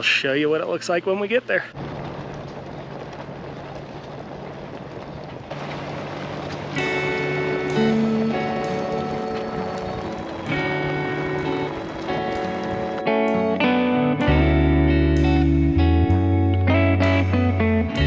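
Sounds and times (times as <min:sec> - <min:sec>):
car driving on gravel road: 0:01.7 - 0:14.8
plucked guitar music: 0:05.9 - 0:18.0.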